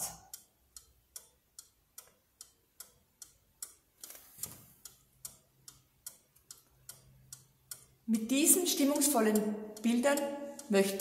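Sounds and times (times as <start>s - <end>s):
pendulum clock ticking: 0.0s - 11.0s.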